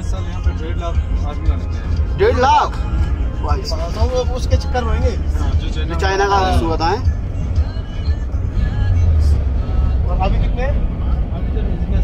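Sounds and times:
car driving rumble: 0.0 - 12.0.

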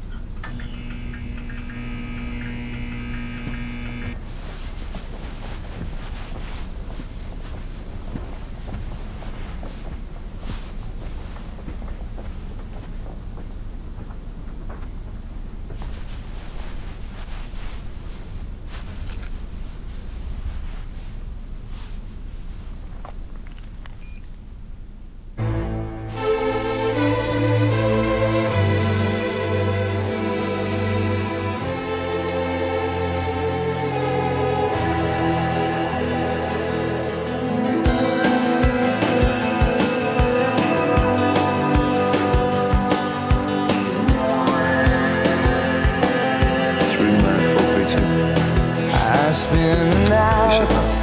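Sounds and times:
steady hum of fixed tones: 0.0 - 44.4
faint regular ticking: 0.1 - 4.1.

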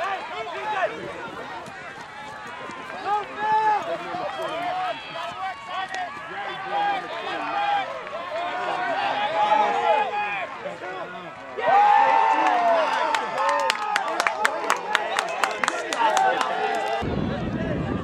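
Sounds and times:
players shouting: 0.0 - 18.0.

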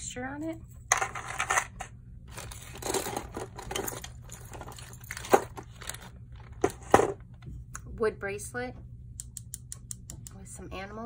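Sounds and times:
plastic bags crinkling: 2.3 - 7.4.

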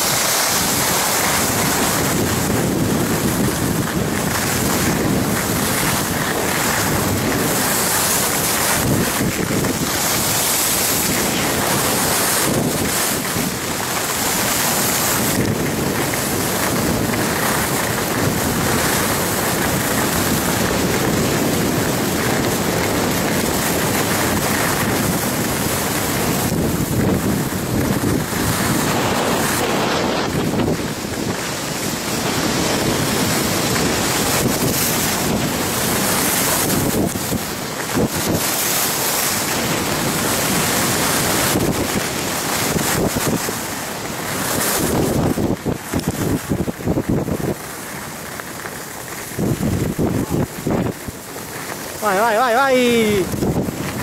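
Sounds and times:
skis hissing on packed snow: 0.0 - 54.0
wind rushing over microphone: 0.0 - 54.0.

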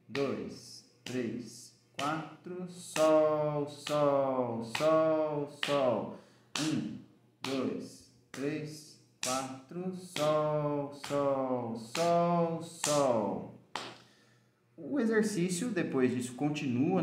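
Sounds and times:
man counting aloud: 0.0 - 13.7.

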